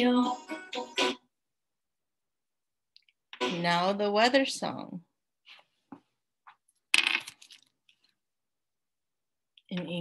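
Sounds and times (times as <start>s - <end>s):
clatter of small hard objects: 6.9s - 7.8s.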